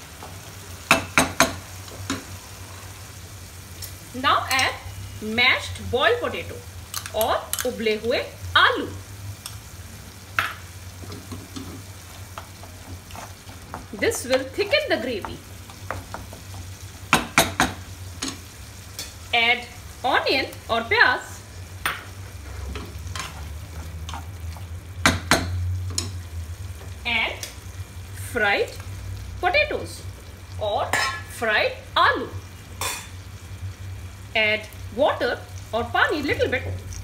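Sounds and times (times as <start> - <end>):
gravy sizzling in a pan: 0.0 - 37.0.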